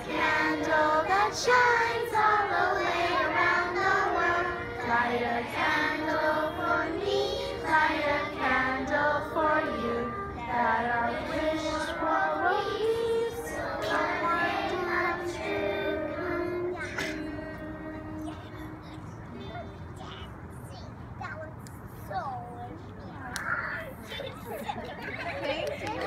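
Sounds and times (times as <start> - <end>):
children singing in unison: 0.0 - 18.8.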